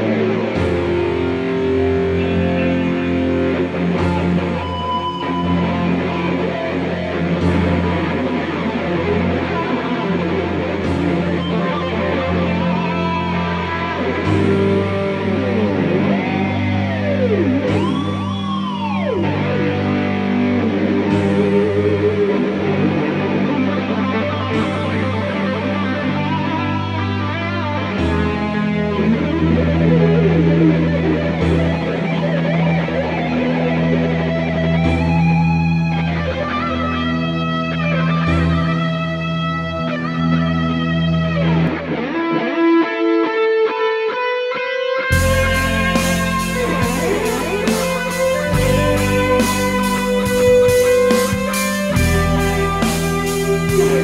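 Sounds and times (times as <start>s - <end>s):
electric guitar solo: 0.0s - 54.0s
instrumental rock music: 0.0s - 54.0s.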